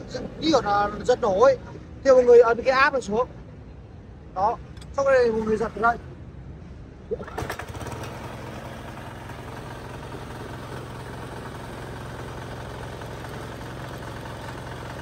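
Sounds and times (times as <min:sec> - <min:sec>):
recoil starter pull: 0:07.1 - 0:10.4
diesel engine idling: 0:07.2 - 0:15.0.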